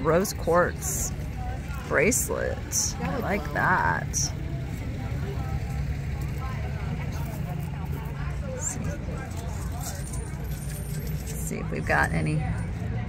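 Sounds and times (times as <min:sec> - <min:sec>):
distant voices chattering: 0:00.0 - 0:13.0.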